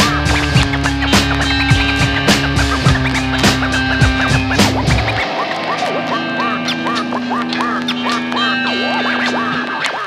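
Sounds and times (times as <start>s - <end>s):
repeated pitch glides: 0.0s - 10.0s.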